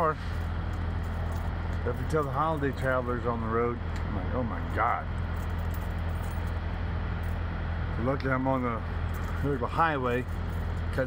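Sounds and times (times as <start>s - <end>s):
diesel truck engines idling: 0.0s - 11.0s.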